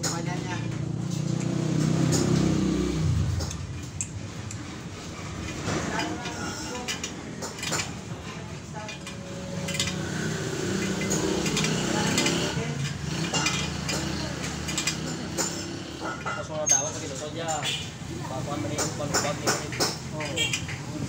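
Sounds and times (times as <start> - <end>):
metallic clinks of spoke wrench: 10.8 - 17.8, 18.9 - 20.9.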